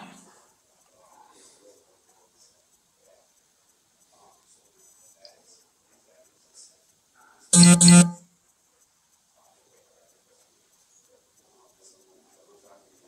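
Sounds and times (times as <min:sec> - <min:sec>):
buzzy electronic tone: 0:07.6 - 0:08.2.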